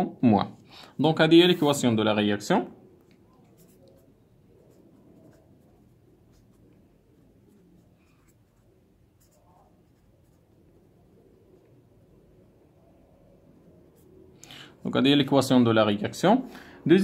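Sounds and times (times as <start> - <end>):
pen scratching on paper: 3.4 - 11.7.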